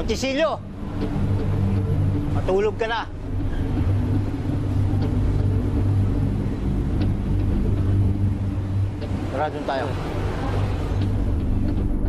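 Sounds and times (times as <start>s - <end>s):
loud low rumbling drone: 0.0s - 12.0s.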